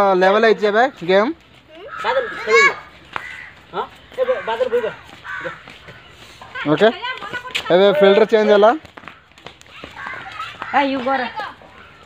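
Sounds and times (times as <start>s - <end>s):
crows cawing: 1.7s - 6.8s, 7.8s - 12.0s.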